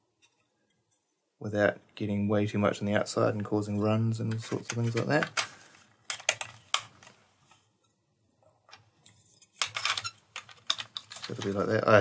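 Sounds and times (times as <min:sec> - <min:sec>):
plastic parts clicking: 0:04.3 - 0:07.2, 0:08.7 - 0:12.0.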